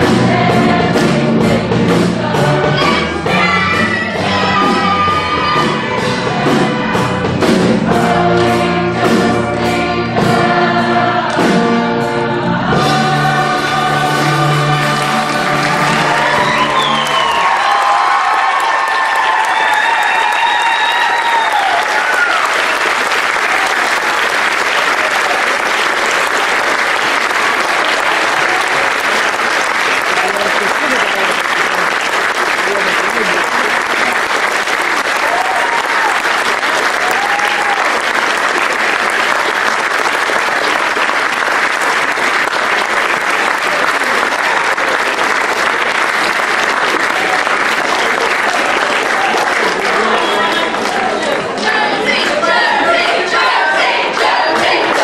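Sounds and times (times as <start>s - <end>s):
large audience applauding: 13.0s - 55.0s.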